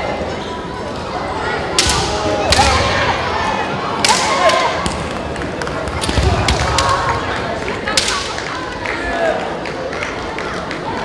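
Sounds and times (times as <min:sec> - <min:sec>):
people shouting: 0:01.8 - 0:04.8.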